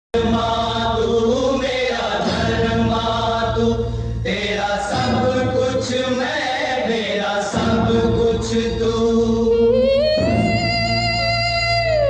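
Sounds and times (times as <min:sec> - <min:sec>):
choir singing held notes: 0:00.2 - 0:11.0.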